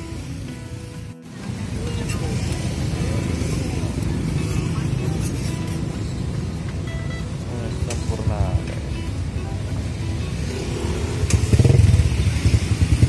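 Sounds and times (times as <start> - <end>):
low rumble of street noise: 0.0 - 13.0
music playing: 0.0 - 13.0.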